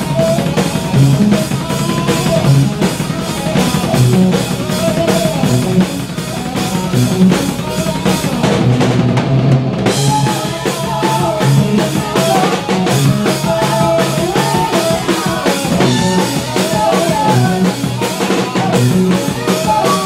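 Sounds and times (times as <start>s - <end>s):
band instruments: 0.0s - 20.0s
rock drum kit beat: 0.0s - 20.0s.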